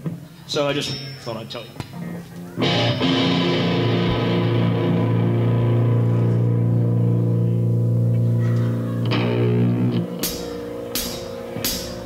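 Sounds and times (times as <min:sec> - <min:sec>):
electric guitar and bass drone: 0:02.0 - 0:12.0.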